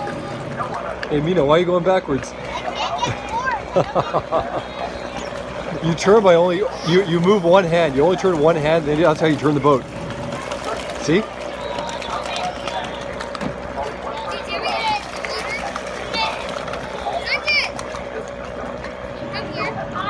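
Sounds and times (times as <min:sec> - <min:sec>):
distant children shouting: 0:02.4 - 0:08.4, 0:10.1 - 0:20.0.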